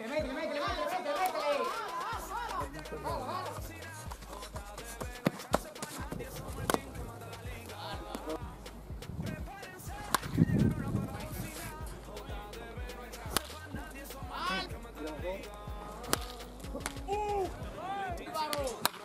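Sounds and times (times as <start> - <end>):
baseball bat cracks: 6.6 - 6.9, 10.0 - 10.4, 13.3 - 13.6, 16.0 - 17.1, 18.4 - 19.0.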